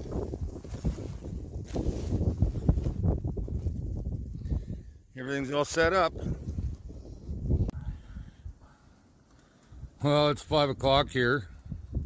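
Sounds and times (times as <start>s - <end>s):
crunching snow and grass: 0.0s - 8.1s
wind rumble on microphone: 0.0s - 8.7s, 9.7s - 12.0s.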